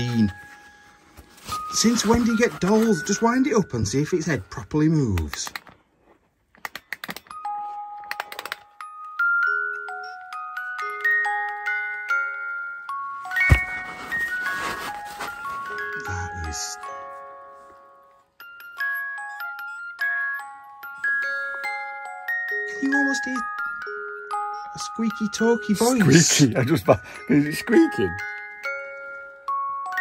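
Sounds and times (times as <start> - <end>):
music box tinkling tune: 0.0 - 5.1, 7.3 - 30.0
handling bump: 13.3 - 15.2.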